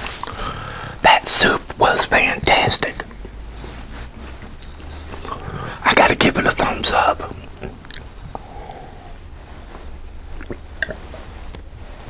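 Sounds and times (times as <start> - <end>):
man whispering: 1.0 - 3.1, 4.6 - 7.6.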